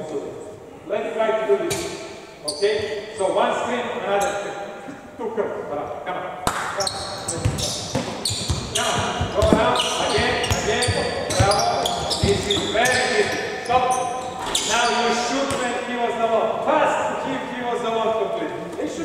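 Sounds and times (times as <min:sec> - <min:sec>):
voices calling: 0:06.8 - 0:16.2
basketball bouncing on wooden floor: 0:07.0 - 0:13.0.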